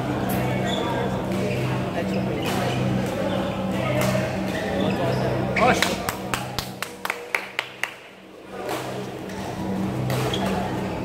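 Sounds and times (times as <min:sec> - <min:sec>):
voices chattering: 0:00.0 - 0:06.8
shoe squeak: 0:00.6 - 0:03.0, 0:04.5 - 0:05.8, 0:10.2 - 0:10.8.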